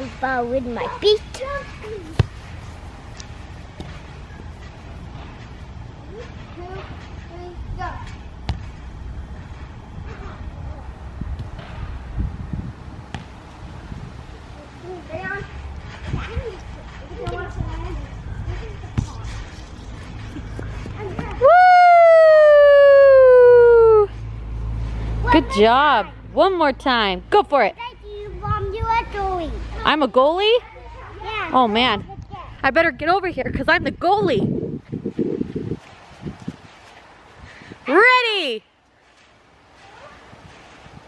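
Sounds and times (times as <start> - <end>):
foot kicking a ball: 2.0 - 4.1, 8.4 - 8.8, 13.1 - 13.4
loud high-pitched yell: 21.4 - 24.1.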